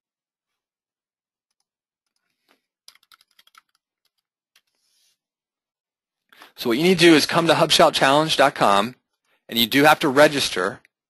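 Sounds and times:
faint keyboard typing: 0:01.5 - 0:04.8.

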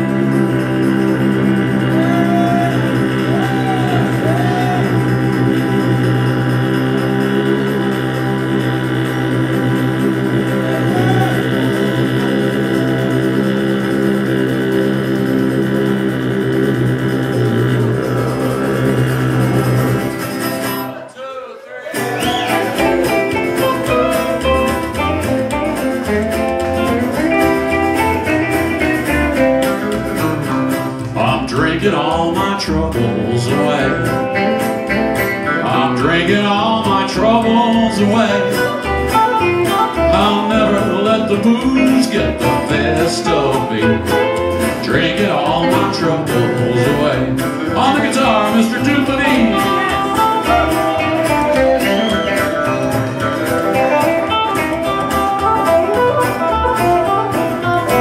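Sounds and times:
picked guitar lines: 0:00.0 - 0:21.0, 0:21.9 - 0:58.0
country band playing: 0:00.0 - 0:58.0.

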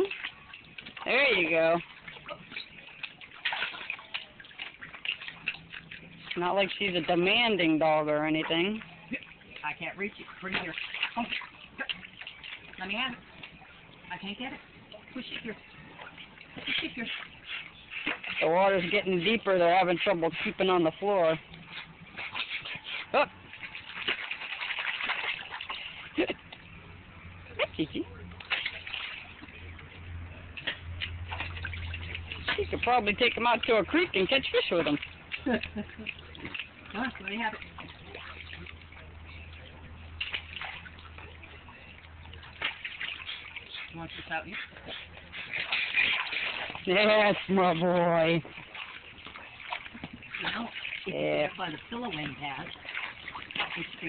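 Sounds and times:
water splashing and dripping: 0:00.0 - 0:54.0.

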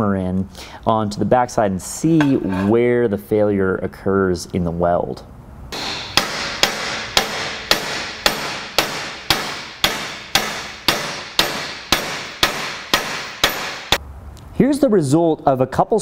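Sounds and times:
sledgehammer striking steel wedge: 0:05.8 - 0:14.0.

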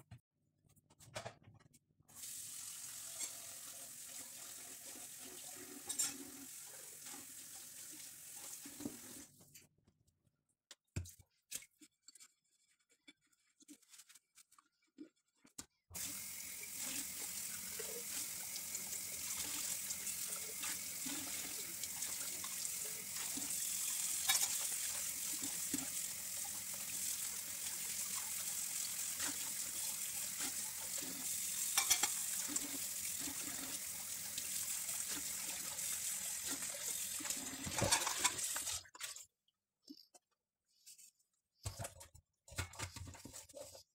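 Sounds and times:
kitchen tap running into sink: 0:02.1 - 0:09.3, 0:16.0 - 0:39.2.

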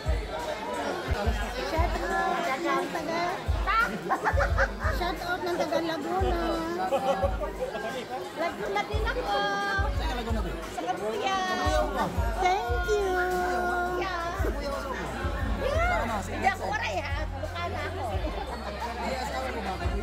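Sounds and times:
background music with deep bass: 0:00.0 - 0:20.0
crowd talking: 0:00.0 - 0:20.0.

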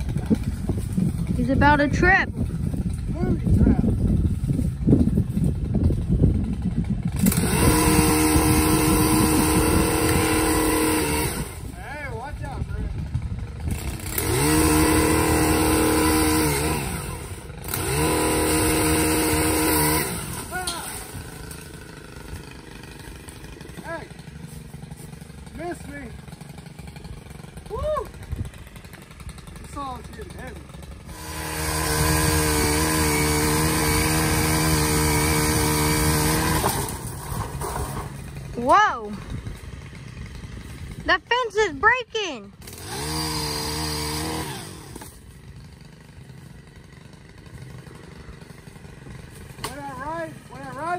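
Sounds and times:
pole saw motor cutting limbs: 0:00.0 - 0:50.9.

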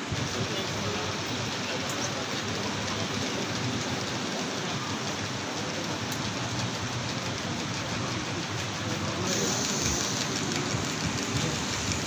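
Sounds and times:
even hiss: 0:09.2 - 0:12.0.

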